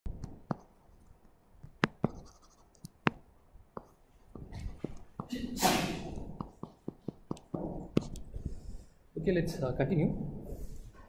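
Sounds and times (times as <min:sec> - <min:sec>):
stylus tapping on tablet screen: 0:00.1 - 0:05.3, 0:06.2 - 0:08.3.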